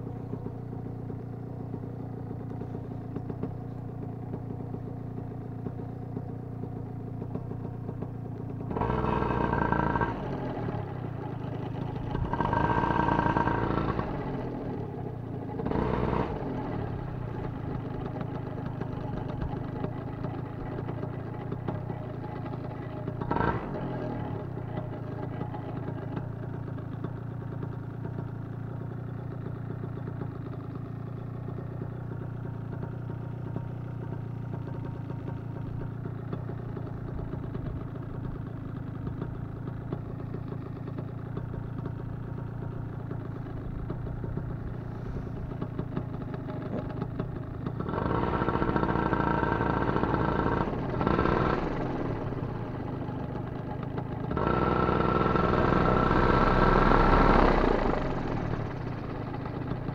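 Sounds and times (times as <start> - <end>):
paramotor engine idling and revving: 0.0 - 59.9.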